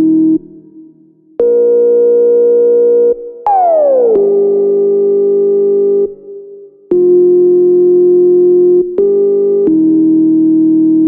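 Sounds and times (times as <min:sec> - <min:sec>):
held synthesizer notes: 0:03.4 - 0:05.0.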